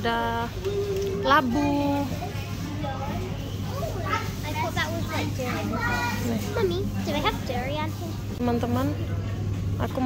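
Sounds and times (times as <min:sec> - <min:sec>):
young children chattering: 0:00.6 - 0:08.4.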